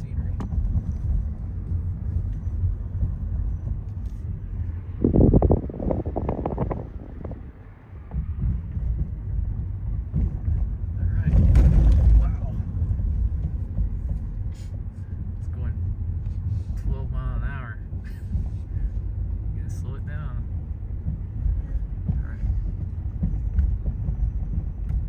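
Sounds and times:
car tyres and engine rumbling: 0:00.0 - 0:25.0.

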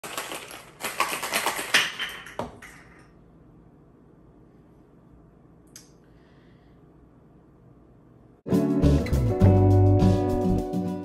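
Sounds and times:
ice rattling in cocktail shaker: 0:00.0 - 0:02.9.

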